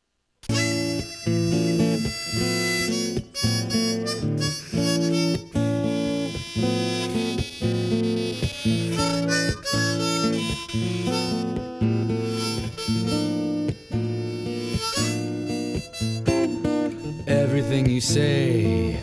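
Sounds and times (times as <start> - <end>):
guitar: 0.4 - 19.0
harmonica playing chords: 0.4 - 19.0.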